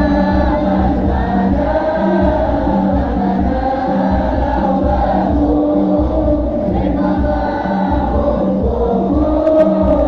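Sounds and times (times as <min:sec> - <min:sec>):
group singing together: 0:00.0 - 0:10.0
low regular beat: 0:00.0 - 0:10.0.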